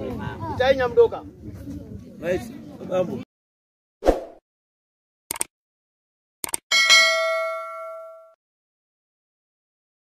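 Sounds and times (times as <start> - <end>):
bright bell ding: 6.7 - 8.4.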